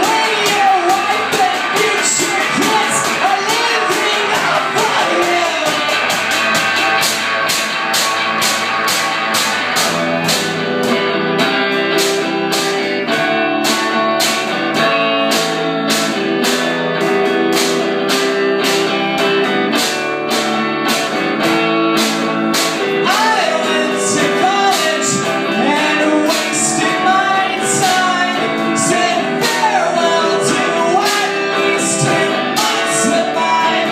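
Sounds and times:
electric guitar: 0.0 - 33.9.

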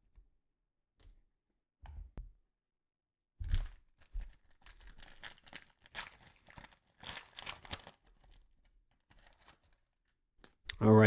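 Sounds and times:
foil wrapper crackling and tearing: 3.5 - 10.0.

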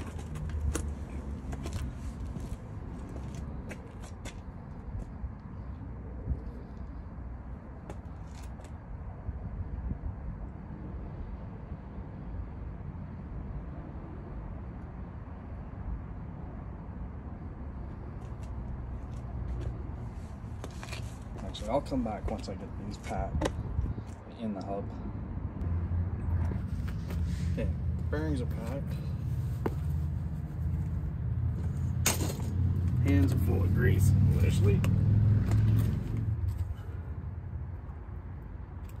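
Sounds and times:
low outdoor background rumble: 23.6 - 39.0.

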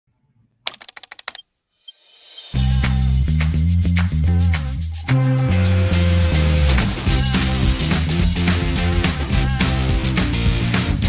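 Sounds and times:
computer keyboard typing: 0.7 - 1.4.

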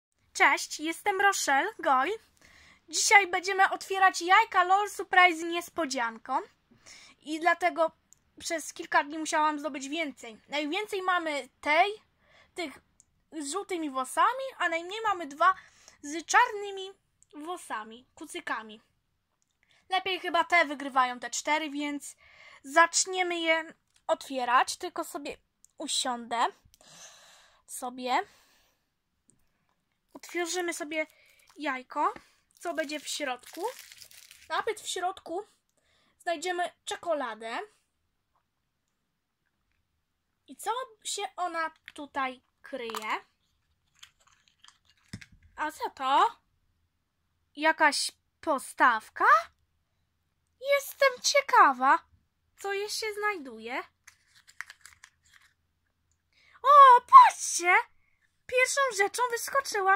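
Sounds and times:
wrapper crinkling and tearing: 30.2 - 31.6, 32.5 - 34.7, 43.6 - 45.4, 54.0 - 55.6.

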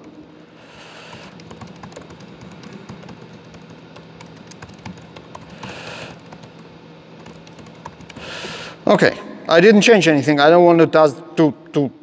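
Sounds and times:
laptop keyboard typing: 1.0 - 8.8.

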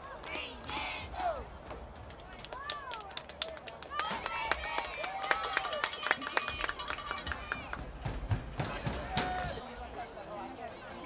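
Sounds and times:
cheerleaders chanting: 0.0 - 1.6.

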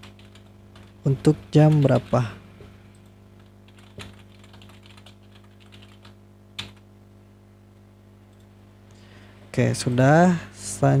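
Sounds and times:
keyboard typing: 0.0 - 2.3, 2.9 - 6.8
low electrical hum: 0.0 - 11.0.

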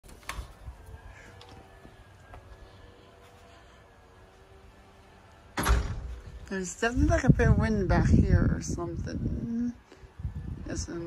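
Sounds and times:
faint steady drone: 0.7 - 11.0
wind buffeting microphone: 5.9 - 11.0.

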